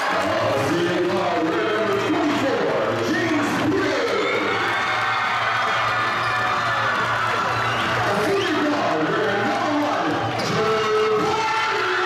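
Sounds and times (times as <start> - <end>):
crowd cheering and shouting: 0.0 - 12.0
music playing: 0.0 - 12.0.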